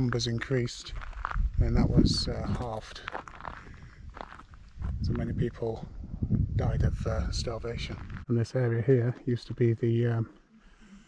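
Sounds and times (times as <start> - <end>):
footsteps on gravel: 0.8 - 5.2, 7.8 - 8.3.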